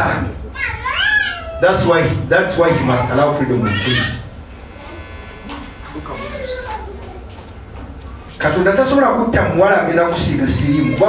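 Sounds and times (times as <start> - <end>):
low electrical hum: 0.0 - 11.0
man speaking: 1.6 - 4.3, 5.8 - 6.6.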